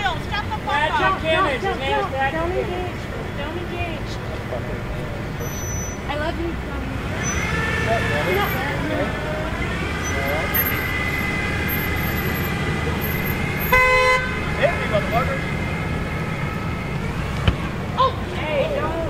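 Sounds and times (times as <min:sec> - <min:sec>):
crowd voices: 0:00.0 - 0:19.0
traffic rumble: 0:00.0 - 0:19.0
car horn honk: 0:07.2 - 0:08.9, 0:10.0 - 0:15.9.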